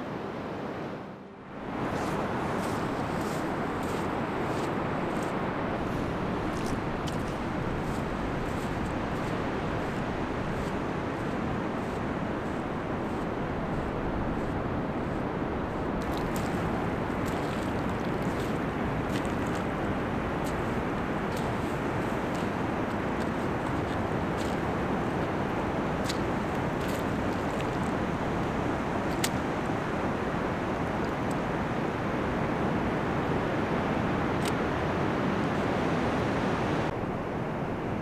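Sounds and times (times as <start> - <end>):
ocean surf: 0.0 - 38.0.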